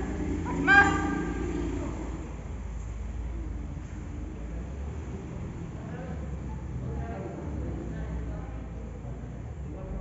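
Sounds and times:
high-pitched voice calling out: 0:00.5 - 0:01.5.

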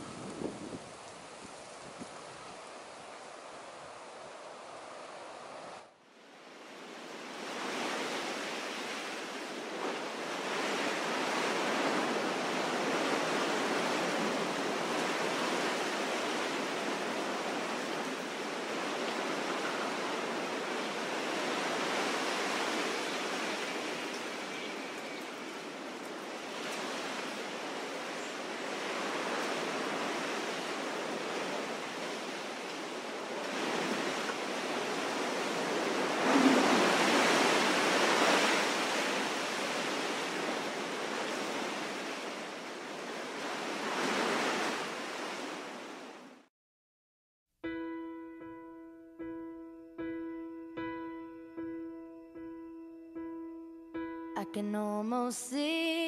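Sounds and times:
wind rushing through trees: 0:00.0 - 0:46.5.

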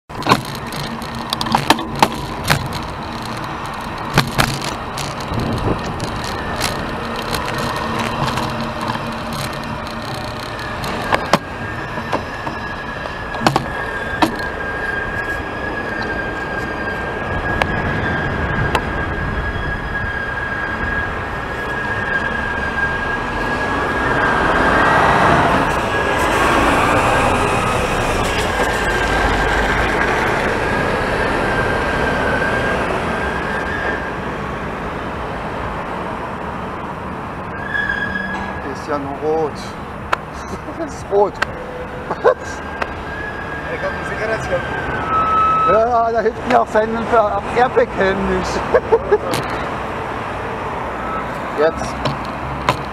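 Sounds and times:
cars passing: 0:00.1 - 0:52.9
steady high-pitched tone: 0:00.5 - 0:34.1.

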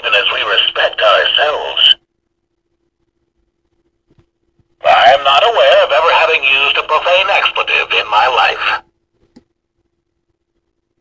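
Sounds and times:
recorded male voice speaking: 0:00.0 - 0:02.0, 0:04.8 - 0:08.8
faint steady hum: 0:00.0 - 0:11.0.

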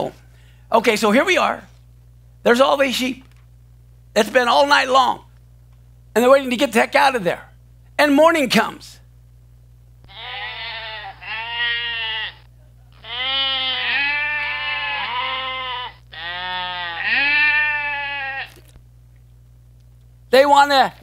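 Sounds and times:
sheep bleating: 0:10.1 - 0:18.7.

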